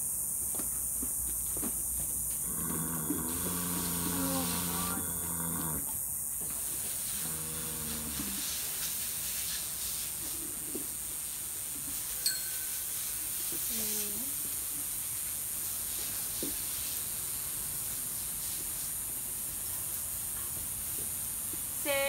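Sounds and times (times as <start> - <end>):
garden hose spraying water: 0.0 - 22.0.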